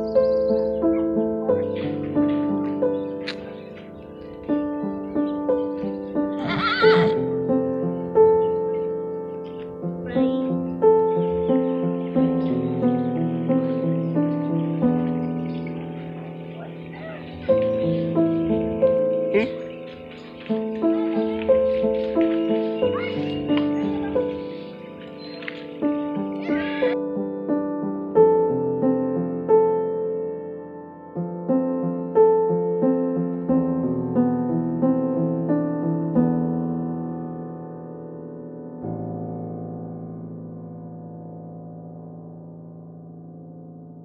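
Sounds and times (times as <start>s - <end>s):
gentle piano music: 0.0s - 44.0s
horse whinnying: 6.4s - 7.2s.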